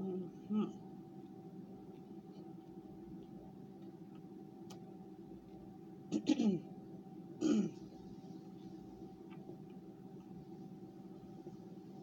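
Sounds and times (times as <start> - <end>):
woman clearing her throat: 6.1 - 6.7, 7.4 - 7.8.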